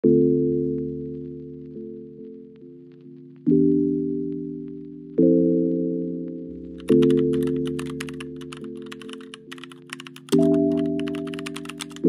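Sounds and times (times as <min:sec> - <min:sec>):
background music held chord: 0:00.0 - 0:12.0
keyboard typing clicks: 0:06.8 - 0:12.0.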